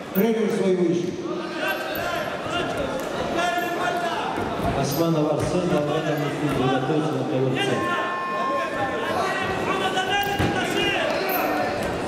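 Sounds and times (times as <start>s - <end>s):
men calling out in echoing hall: 1.0s - 11.8s.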